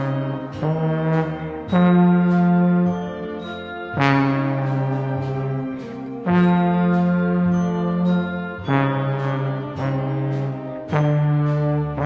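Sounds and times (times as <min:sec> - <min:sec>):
trombone long held notes: 0:00.0 - 0:12.0.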